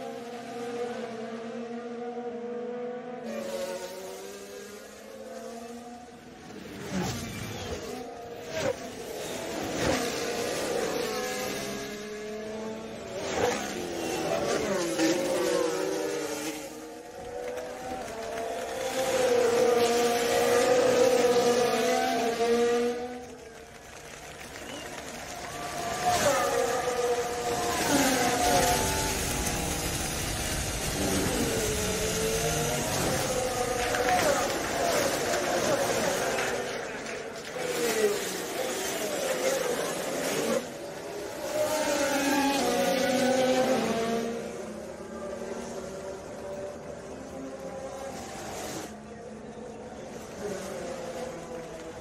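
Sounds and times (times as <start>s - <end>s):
racing car engines passing: 0.0s - 52.0s.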